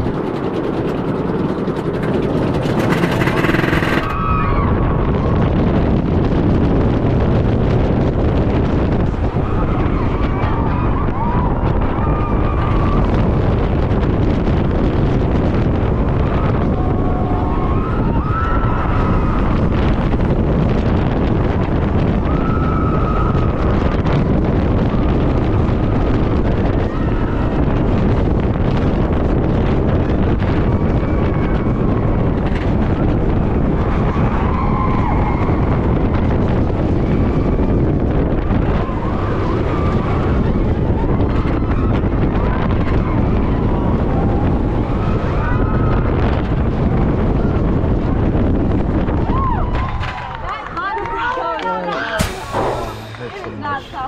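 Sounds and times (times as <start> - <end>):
roller coaster train rumbling: 0.0 - 54.0
wind blasting microphone: 0.0 - 54.0
riders screaming: 2.6 - 5.0, 16.1 - 20.0, 22.2 - 23.9, 26.6 - 27.9, 33.8 - 36.0.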